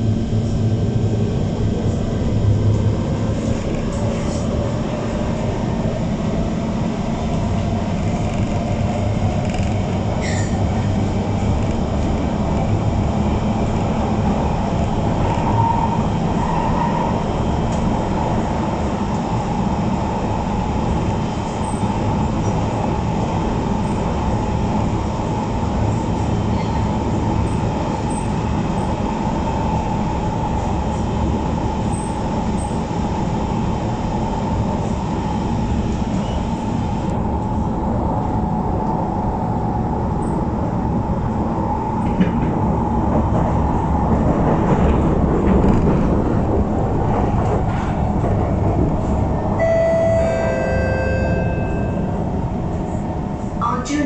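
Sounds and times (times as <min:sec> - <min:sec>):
steady train whine: 0:00.0 - 0:54.0
wheels rumbling on rail: 0:00.0 - 0:54.0.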